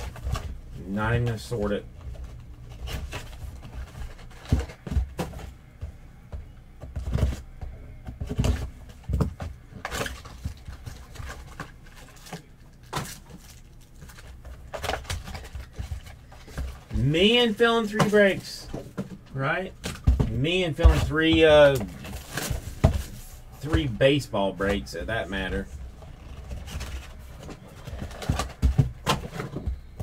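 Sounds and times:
pack wrappers rustling and crinkling: 9.8 - 18.4.

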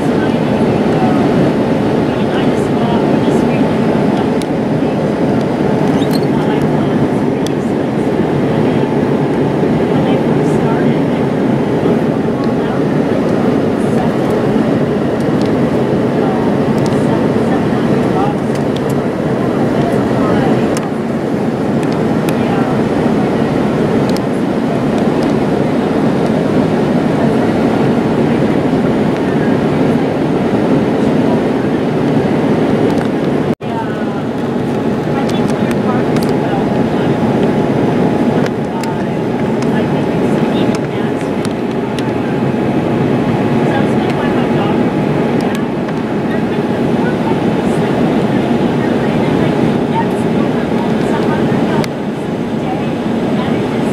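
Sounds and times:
jet cabin engine noise: 0.0 - 53.9
rushing airflow: 0.0 - 53.9.

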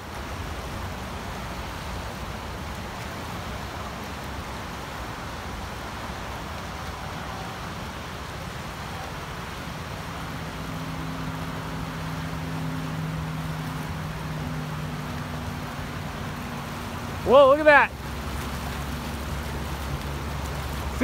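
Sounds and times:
rushing floodwater: 0.0 - 21.0.

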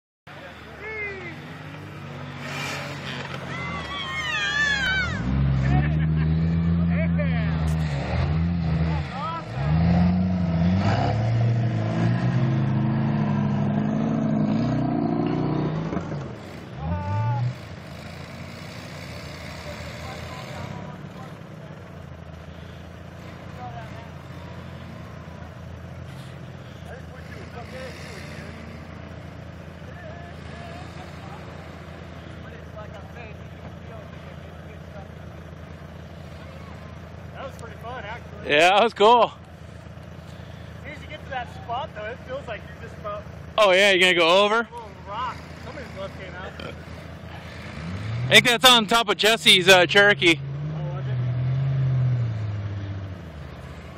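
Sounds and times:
off-road vehicle engine revving: 0.3 - 53.9.

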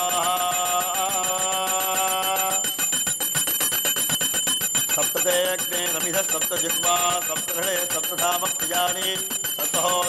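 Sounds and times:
bell rung rapidly: 0.0 - 10.0.

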